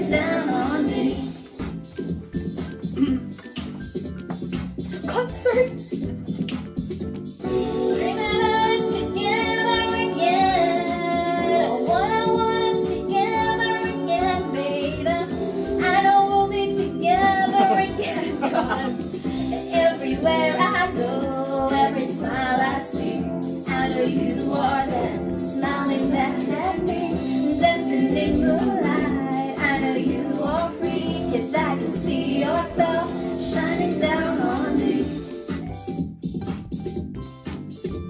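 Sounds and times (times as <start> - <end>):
backing music: 0.0 - 38.0
woman singing karaoke: 7.9 - 35.2.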